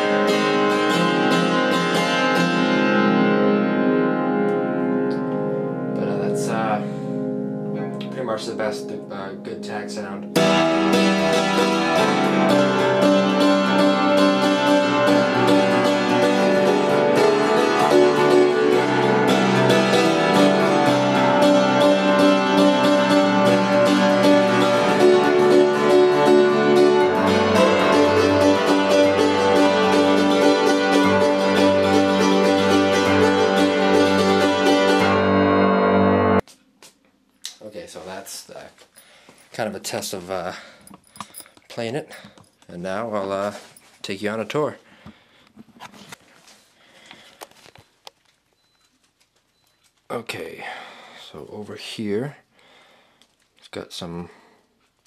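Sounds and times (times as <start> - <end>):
piano bass line: 0.0 - 36.4
tack piano chords: 0.0 - 36.5.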